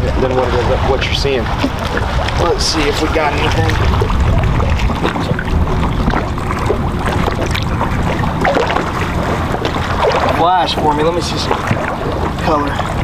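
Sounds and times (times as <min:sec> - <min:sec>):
water lapping around boat: 0:00.0 - 0:13.0
wind buffeting microphone: 0:00.0 - 0:13.0.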